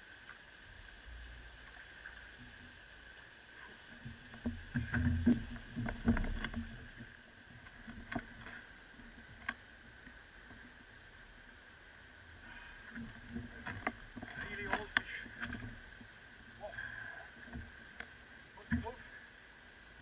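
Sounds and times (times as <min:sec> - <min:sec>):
water against hull: 0:00.0 - 0:20.0
clicks and knocks from gear: 0:04.4 - 0:08.6.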